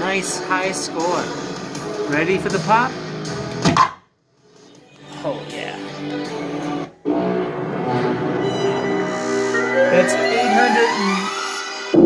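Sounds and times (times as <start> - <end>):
pinball machine music and effects: 9.4 - 12.0.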